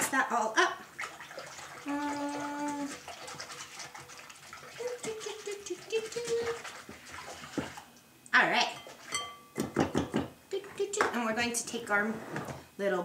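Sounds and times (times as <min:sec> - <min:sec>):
batter sloshing: 0:00.8 - 0:08.0.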